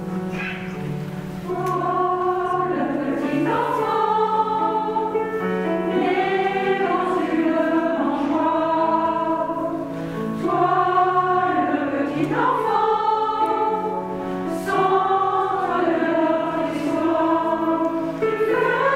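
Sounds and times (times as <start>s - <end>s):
mixed choir singing held chords: 0.0s - 18.9s.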